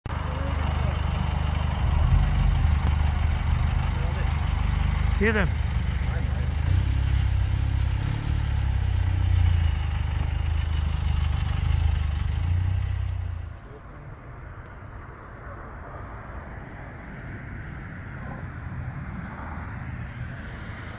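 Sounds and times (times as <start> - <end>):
heavy vehicle engine humming: 0.0 - 20.9.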